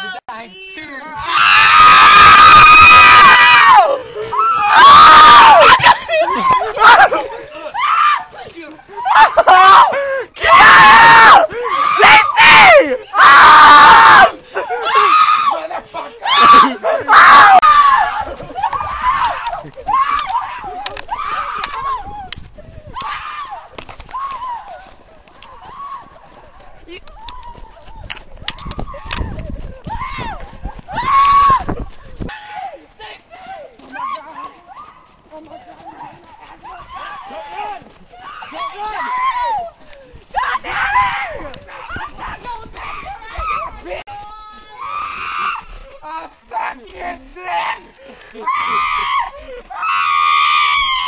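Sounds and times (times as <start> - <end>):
young people yelling and whooping: 0.0 - 51.0
footsteps crunching in snow: 14.2 - 51.0
high-pitched scream: 44.7 - 45.8.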